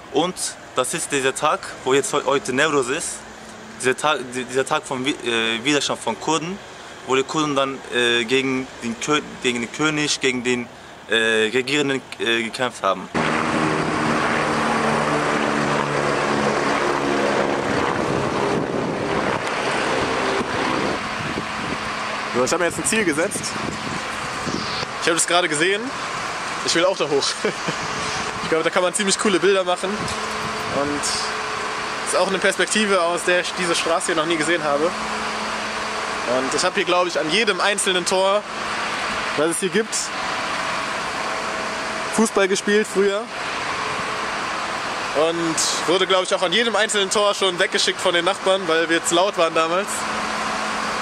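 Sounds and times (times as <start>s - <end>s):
engine drone: 0.0s - 51.0s
rushing noise: 13.1s - 47.1s
motor vehicle running: 13.1s - 51.0s.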